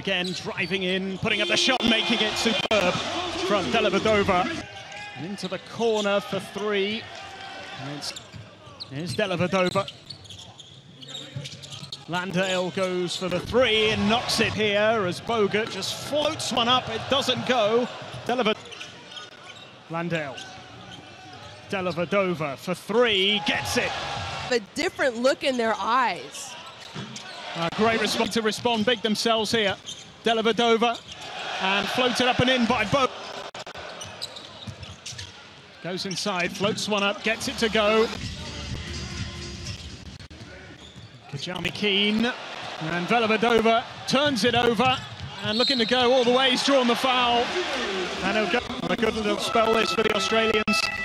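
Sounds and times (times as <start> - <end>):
faint arena crowd noise: 0.0 - 51.0.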